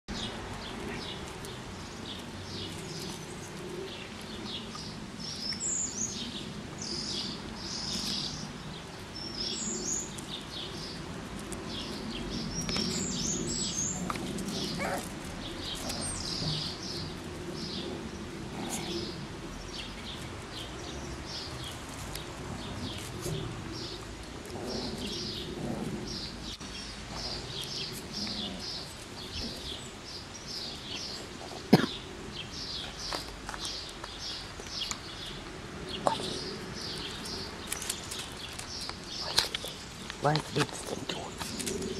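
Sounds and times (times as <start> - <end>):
small birds chirping: 0.1 - 41.9.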